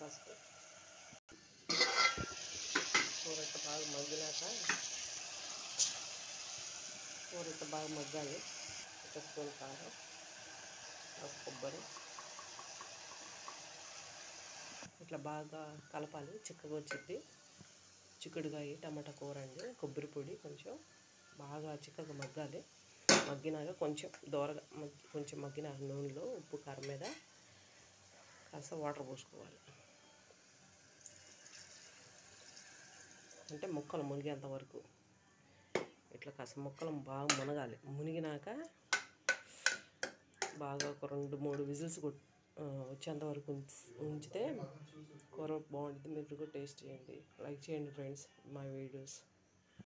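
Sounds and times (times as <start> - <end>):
vegetables sizzling in a pot: 0.0 - 44.3.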